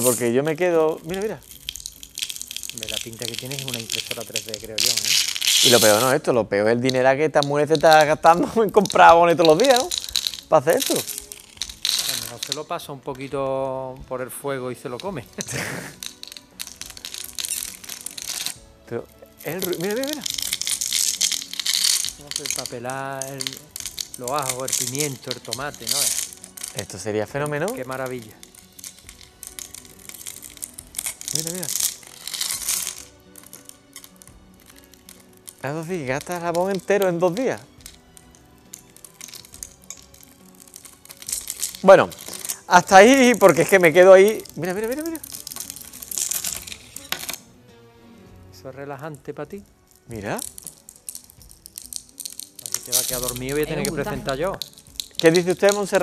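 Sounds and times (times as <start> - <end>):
soap cubes crackling: 0.0 - 6.2, 6.8 - 13.3, 14.6 - 47.5, 49.6 - 56.0.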